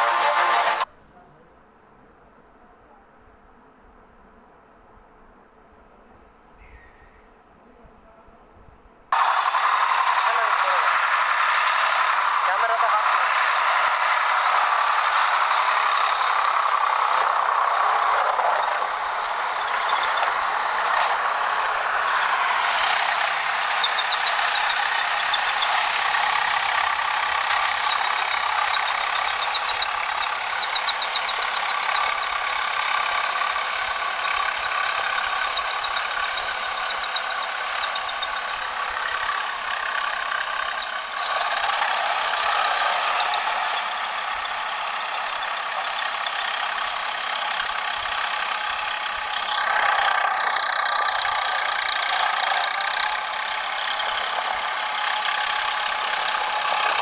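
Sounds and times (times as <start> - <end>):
diesel tractor engine under load: 0.0 - 0.9, 9.1 - 57.0.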